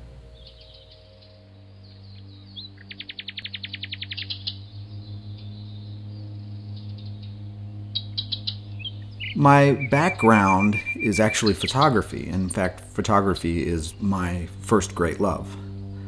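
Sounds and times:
low steady drone: 0.0s - 16.0s
small birds chirping: 0.3s - 16.0s
fast bird trill: 8.0s - 12.0s.

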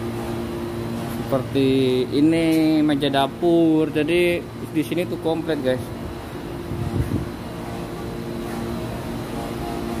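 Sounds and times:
low mechanical hum: 0.0s - 10.0s.

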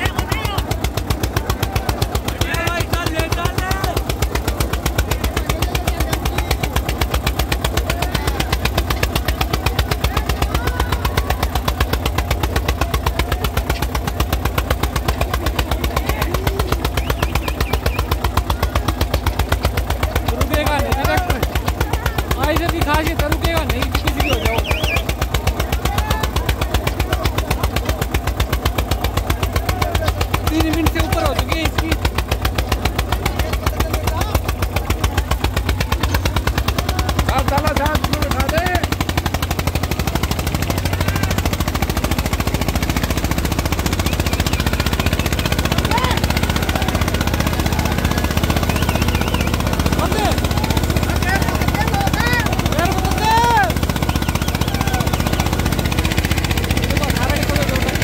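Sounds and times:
faint crowd voices: 0.0s - 58.0s
tractor diesel engine running: 0.0s - 58.0s.

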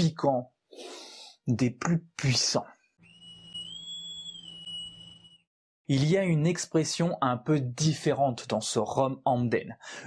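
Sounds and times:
high electronic whistle tone: 3.0s - 5.5s.

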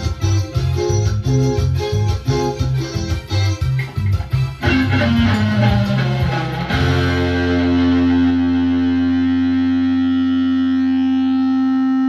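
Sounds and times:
distorted electric guitar chord: 2.4s - 12.0s.

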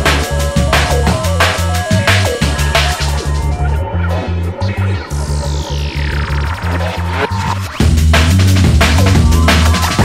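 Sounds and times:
drum and bass beat: 0.0s - 10.0s
pulsing bassline: 0.0s - 10.0s
turntable scratching: 0.0s - 10.0s.

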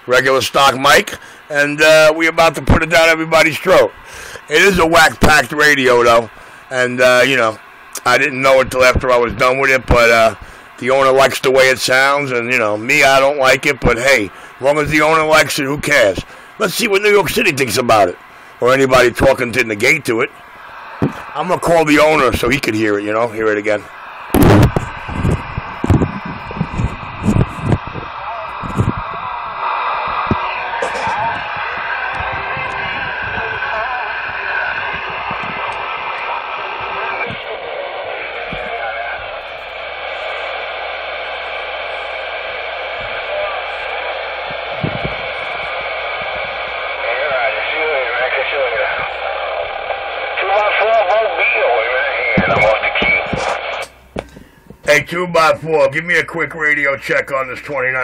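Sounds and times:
indistinct radio voices: 0.0s - 58.0s
tinny radio audio with hiss: 0.0s - 58.0s.

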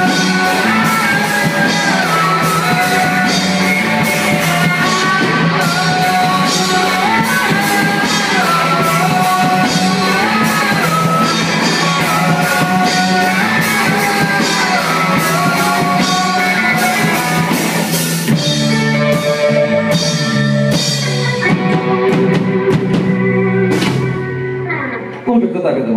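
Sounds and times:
drum kit with cymbal strikes: 0.0s - 24.5s
bass guitar: 0.0s - 25.9s
electric guitars: 0.0s - 25.9s.

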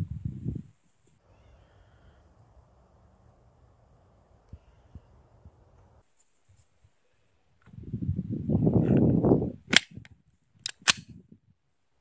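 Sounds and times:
pistol handling noise: 9.7s - 10.0s, 10.6s - 11.1s
pistol slide snapping shut: 10.6s - 11.1s.

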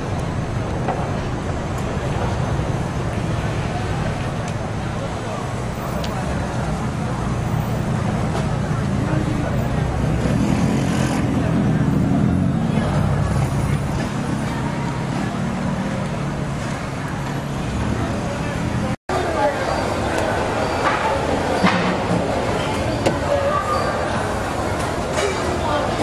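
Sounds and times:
traffic rumble: 0.0s - 26.0s.

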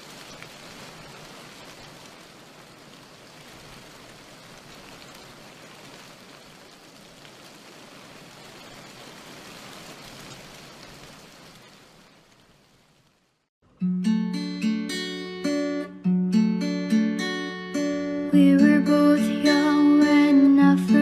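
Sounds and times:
raindrop ticks: 0.0s - 13.2s
rain hiss: 0.0s - 13.5s.

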